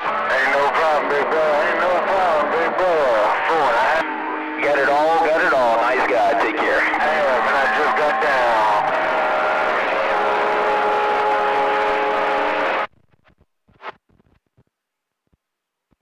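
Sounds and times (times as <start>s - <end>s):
wavering voice-like radio sounds: 0.0s - 12.8s
steady radio tones: 0.0s - 12.9s
radio hiss: 0.1s - 9.5s.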